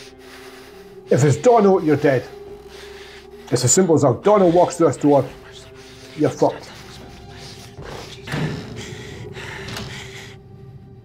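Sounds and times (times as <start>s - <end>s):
low drone music: 0.0s - 11.0s.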